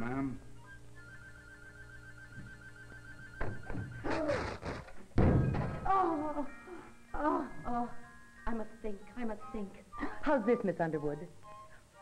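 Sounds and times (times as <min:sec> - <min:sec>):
background music: 0:00.0 - 0:12.0
telephone ringing: 0:00.6 - 0:04.0
sharp thunk: 0:03.4 - 0:05.9.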